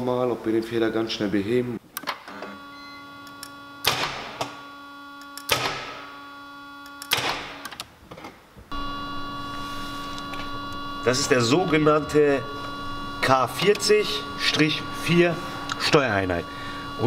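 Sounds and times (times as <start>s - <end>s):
louder hum with steady tones: 2.3s - 7.7s, 8.7s - 17.0s
steady hum: 2.4s - 7.6s, 8.7s - 17.0s.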